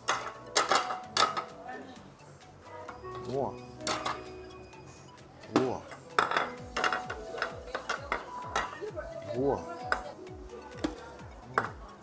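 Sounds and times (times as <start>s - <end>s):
ceramic plates clinking: 0.0s - 1.6s, 2.9s - 4.4s, 5.5s - 8.9s, 10.8s - 12.0s.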